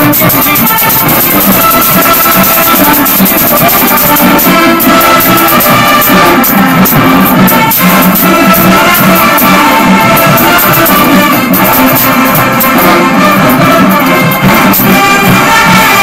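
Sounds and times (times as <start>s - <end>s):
loud brass-heavy music: 0.0s - 16.0s.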